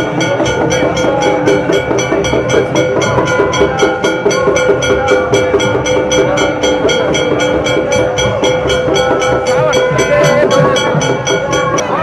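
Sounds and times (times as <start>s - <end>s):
metallic percussion strikes: 0.0s - 12.0s.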